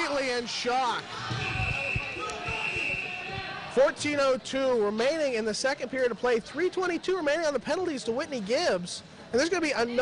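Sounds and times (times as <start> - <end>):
referee's whistle blast: 1.3 - 3.3.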